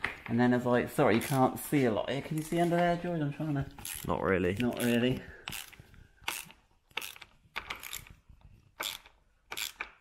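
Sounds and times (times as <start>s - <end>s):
ratchet spanner clicking: 5.5s - 8.1s, 8.8s - 9.9s.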